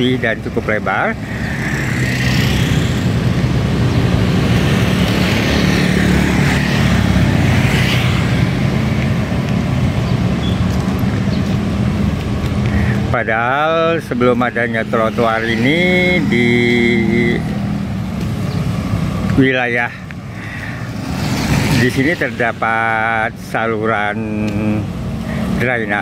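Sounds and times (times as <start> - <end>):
motor scooters passing: 0.0 - 26.0.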